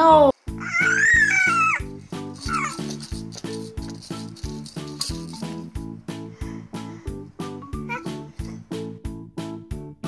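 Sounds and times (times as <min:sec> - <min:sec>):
background music with steady beat: 0:00.3 - 0:10.0
baby squealing: 0:00.6 - 0:03.0, 0:07.8 - 0:08.4.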